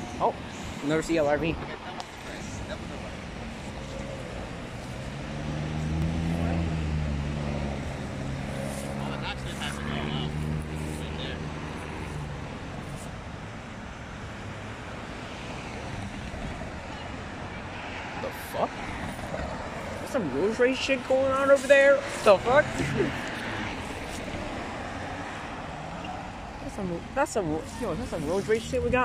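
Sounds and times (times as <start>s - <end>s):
street traffic: 0.0s - 29.0s
car engine revving: 1.0s - 13.4s, 15.7s - 29.0s.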